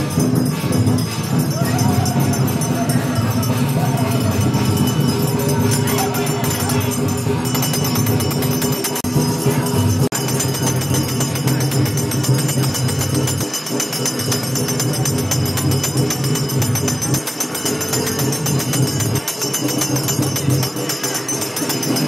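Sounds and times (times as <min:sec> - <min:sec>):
jingling percussion music: 0:00.0 - 0:22.0.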